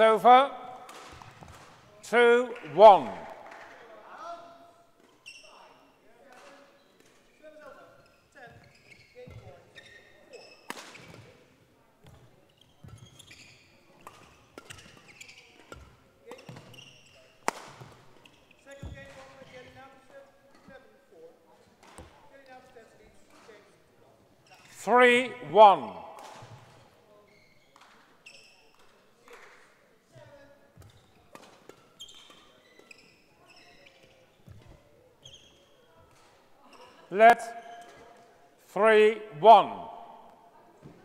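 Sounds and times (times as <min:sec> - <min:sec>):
racket hitting shuttlecock: 0:26.0 - 0:26.6.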